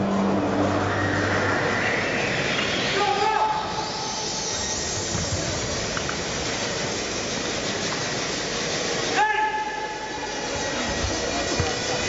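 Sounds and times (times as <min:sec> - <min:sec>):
crowded hall noise: 0:00.0 - 0:12.0
loud held shout: 0:09.1 - 0:10.2.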